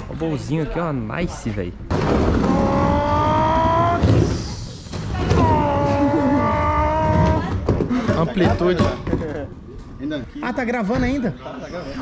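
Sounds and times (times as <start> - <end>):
skateboard wheels rolling on plywood: 5.1 - 9.3.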